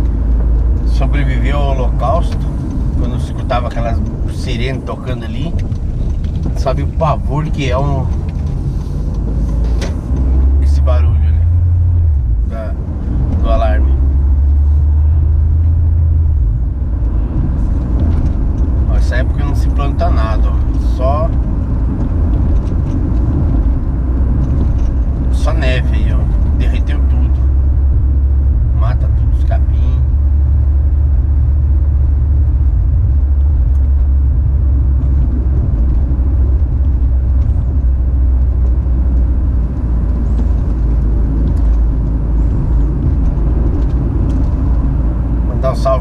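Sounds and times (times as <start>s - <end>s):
car engine and tyres rumbling: 0.0s - 46.0s.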